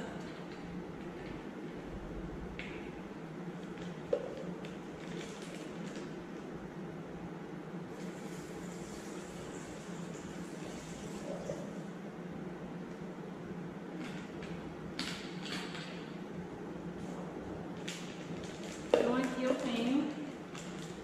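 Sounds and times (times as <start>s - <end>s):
low hum of room equipment: 0.0s - 21.0s.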